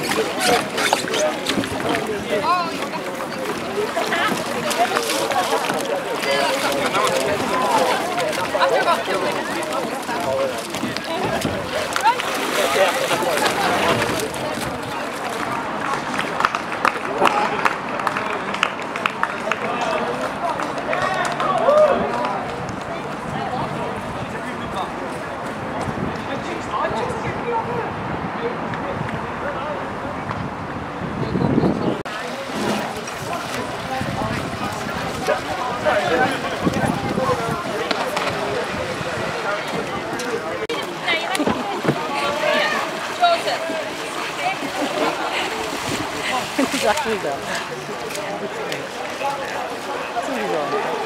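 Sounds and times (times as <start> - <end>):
background hubbub: 0.0 - 51.0
many voices talking: 0.0 - 51.0
people calling and chattering: 0.0 - 51.0.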